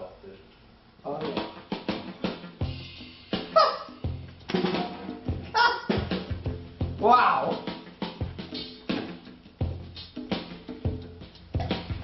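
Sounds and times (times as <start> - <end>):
drum kit playing a groove: 1.1 - 12.0.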